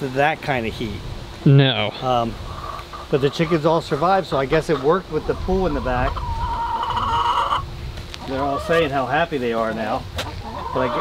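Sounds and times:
chicken calling: 1.9s - 9.2s, 9.8s - 11.0s.

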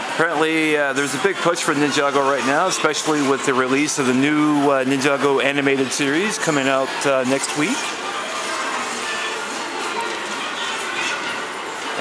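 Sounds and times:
faint background music: 0.0s - 12.0s
indoor crowd and room noise: 0.0s - 12.0s.

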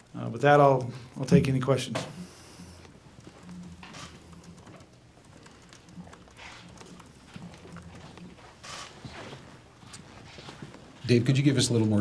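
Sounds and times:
steady low hum: 0.0s - 12.0s
faint clicks: 2.0s - 9.1s.

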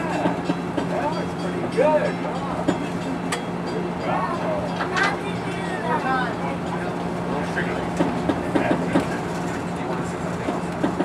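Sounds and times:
people talking: 0.0s - 3.1s, 3.7s - 11.0s
rail car engine hum: 0.0s - 11.0s.

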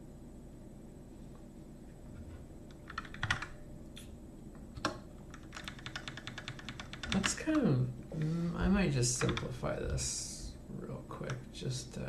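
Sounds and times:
computer keyboard typing: 2.7s - 3.6s, 4.8s - 7.6s, 9.1s - 9.6s.

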